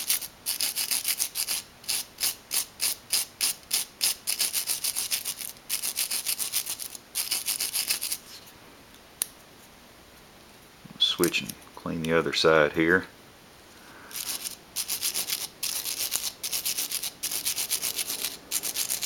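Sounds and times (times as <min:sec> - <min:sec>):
wire brush scrubbing metal: 0:14.1 - 0:19.0.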